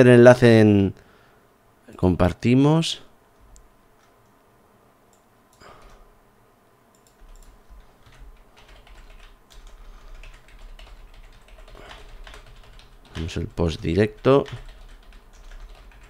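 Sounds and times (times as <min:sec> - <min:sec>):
computer keyboard typing: 0:06.9 - 0:16.0.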